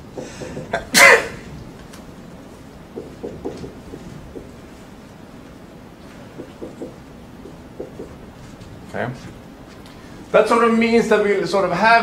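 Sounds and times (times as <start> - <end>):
man coughing or sneezing: 0.7 - 1.5.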